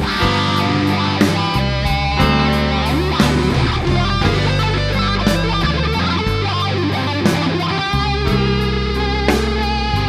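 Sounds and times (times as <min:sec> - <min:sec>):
electric guitar blues solo: 0:00.0 - 0:10.0.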